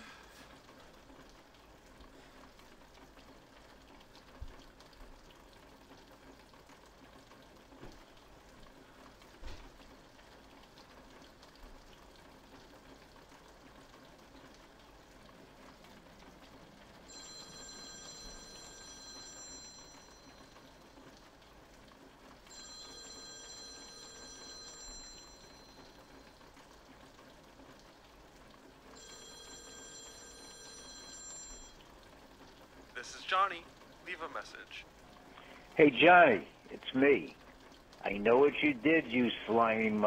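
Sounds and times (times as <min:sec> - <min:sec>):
rain hiss: 0:00.0 - 0:30.4, 0:31.8 - 0:40.0
phone ringing: 0:17.0 - 0:21.1, 0:22.4 - 0:26.5, 0:28.9 - 0:32.0.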